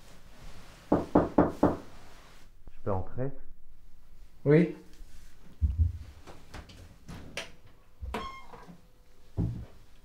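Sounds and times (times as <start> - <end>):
knocks on a door: 0.9 - 1.8.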